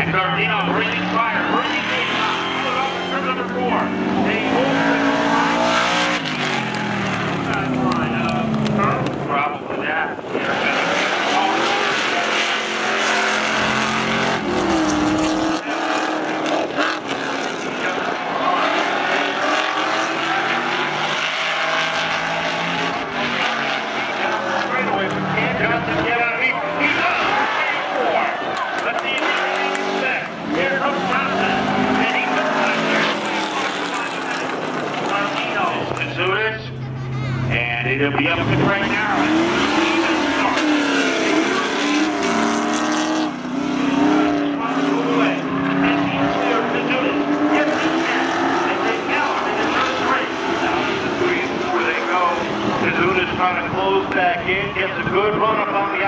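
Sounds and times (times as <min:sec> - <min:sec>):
car engines at full throttle: 0:00.0 - 0:56.0.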